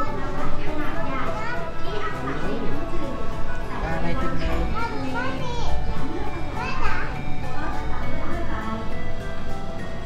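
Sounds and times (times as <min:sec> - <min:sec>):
children talking and calling out: 0:00.0 - 0:09.0
background music: 0:00.0 - 0:10.0.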